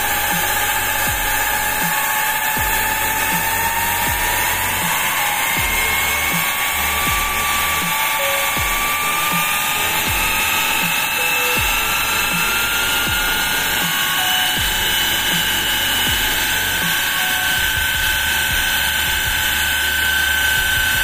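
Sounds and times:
steam hissing: 0:00.0 - 0:21.0
turbine whine: 0:00.0 - 0:21.0.

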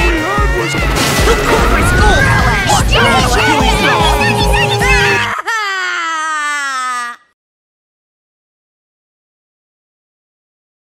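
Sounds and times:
theme music: 0:00.0 - 0:05.4
loud crying wail: 0:01.7 - 0:07.3.

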